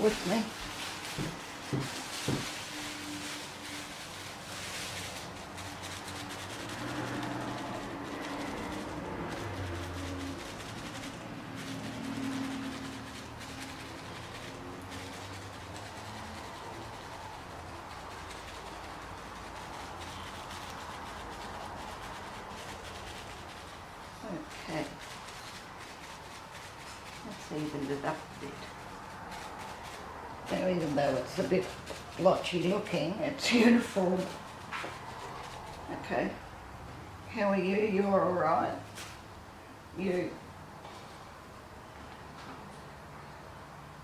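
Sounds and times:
plastic bag dabbing wet paint: 0.0s - 36.4s
low engine-like hum: 2.5s - 37.7s.

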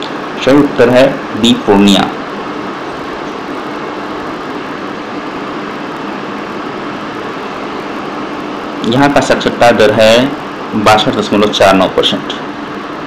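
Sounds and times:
even hiss: 0.0s - 13.0s.

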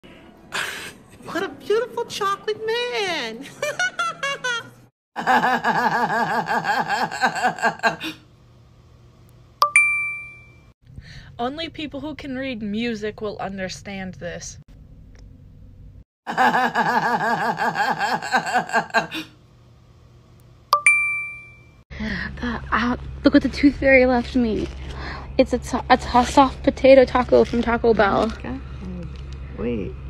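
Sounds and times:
bright two-note ding: 9.6s - 10.6s, 20.8s - 21.7s.

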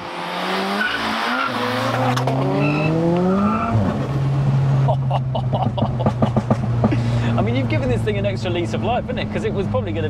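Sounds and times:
car engine droning: 0.0s - 10.0s
people laughing: 4.9s - 7.4s
people talking: 6.9s - 10.0s.

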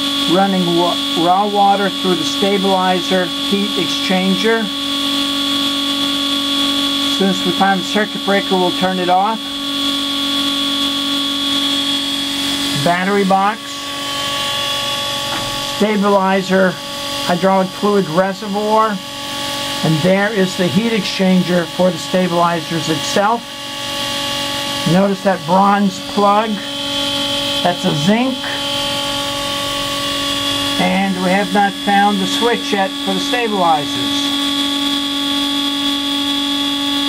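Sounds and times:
electric pump whining: 0.0s - 37.0s.

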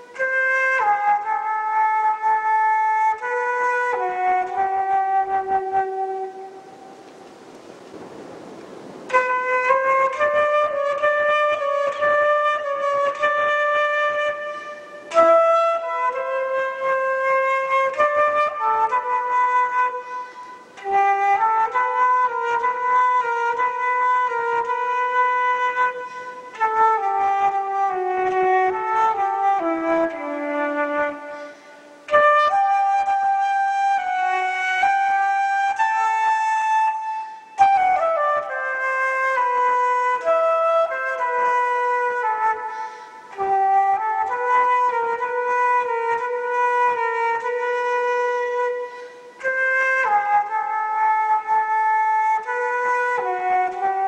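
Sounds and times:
flute playing slow melody: 0.0s - 54.0s.

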